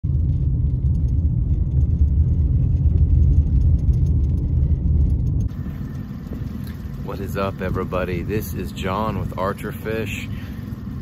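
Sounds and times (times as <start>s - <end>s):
vehicle rumble on dirt road: 0.0s - 11.0s.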